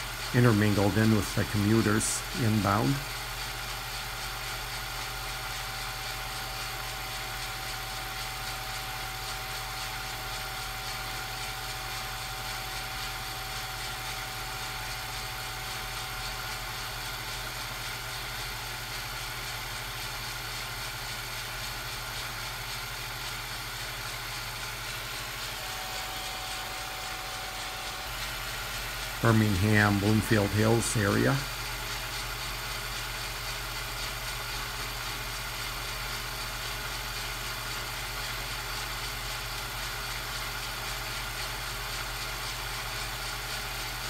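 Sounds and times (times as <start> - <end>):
low hum and hiss: 0.0 - 3.1.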